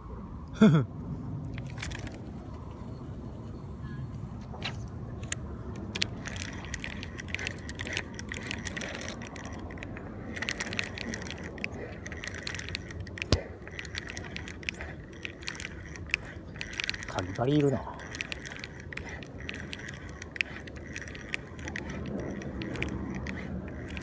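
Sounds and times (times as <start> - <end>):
fishing reel clicking: 1.6 - 2.7, 5.2 - 24.0.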